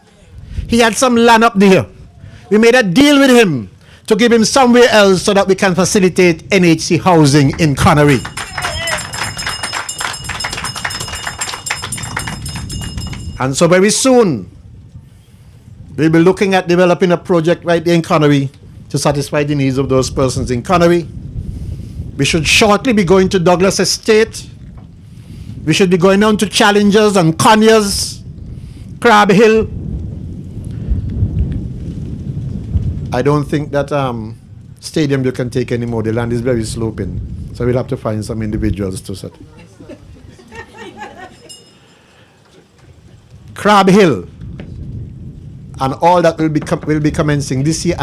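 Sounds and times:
wind buffeting microphone: 0.0s - 41.7s, 42.6s - 48.0s
audience clapping: 7.2s - 13.4s.

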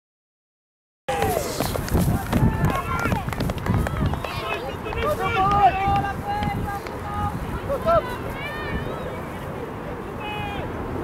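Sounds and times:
women shouting and cheering: 1.1s - 9.4s.

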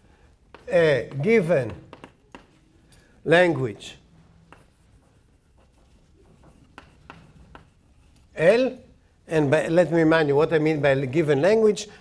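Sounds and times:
chalk scratching on blackboard: 0.5s - 2.7s, 4.4s - 8.8s
chalk tapping on blackboard: 0.5s - 2.8s, 3.8s - 8.4s.

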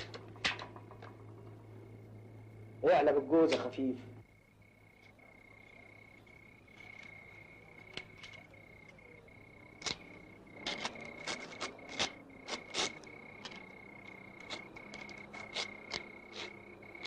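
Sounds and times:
sharp cracks or snaps: 0.0s - 1.1s, 9.7s - 17.0s
crickets chirping: 0.0s - 17.0s.

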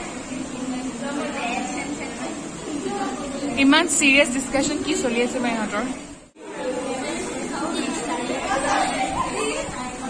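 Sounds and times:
young women talking: 0.0s - 6.1s.

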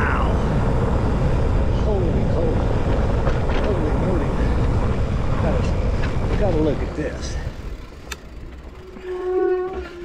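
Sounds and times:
wind and tyres on dirt: 0.0s - 10.0s
bike disc brakes squealing: 8.7s - 10.0s.

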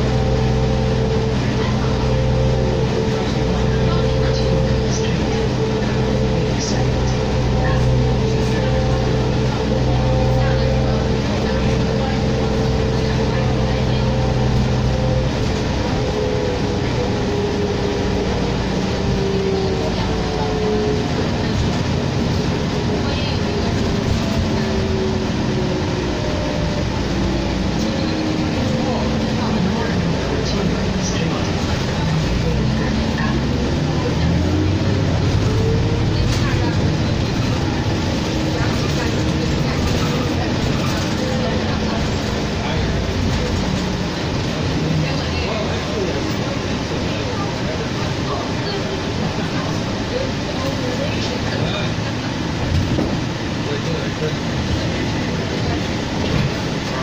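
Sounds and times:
bus engine drone: 0.0s - 57.0s
road rumble: 0.0s - 57.0s.

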